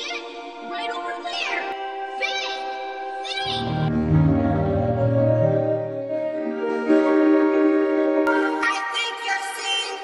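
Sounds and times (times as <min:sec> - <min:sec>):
held chord tones: 0:00.5 - 0:09.1.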